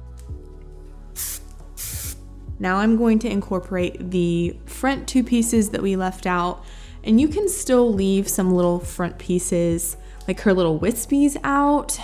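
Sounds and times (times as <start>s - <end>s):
soft background music: 0.0s - 12.0s
aerosol can spraying: 1.2s - 2.2s.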